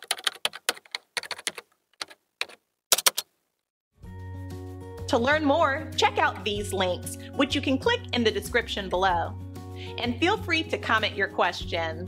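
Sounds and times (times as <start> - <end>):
keyboard typing clicks: 0.0 - 3.3.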